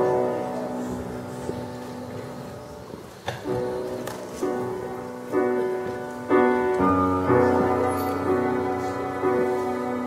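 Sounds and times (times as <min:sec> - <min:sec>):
piano chord: 0:04.6 - 0:10.0.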